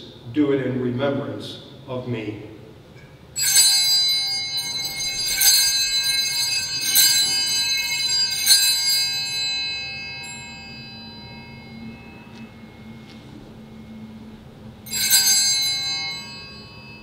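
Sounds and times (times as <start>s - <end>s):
small bells jangling: 3.3s - 17.0s.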